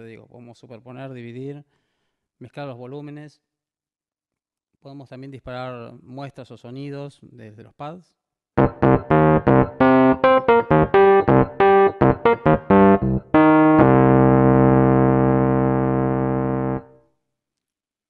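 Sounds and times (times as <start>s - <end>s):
short synthesizer notes: 8.6s - 16.9s
held synthesizer chord: 8.6s - 17.0s.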